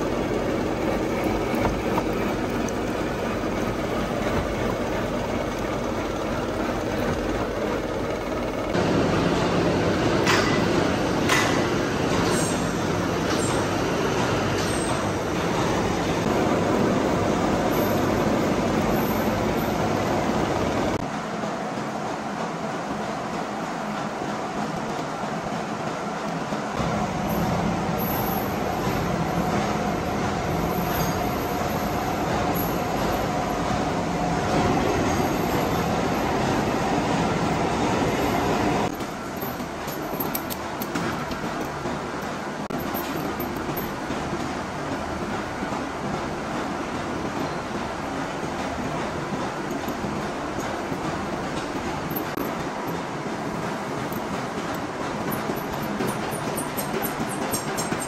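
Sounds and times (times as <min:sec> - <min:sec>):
shop noise with clicks: 0:10.1 - 0:16.3, 0:38.8 - 0:58.0.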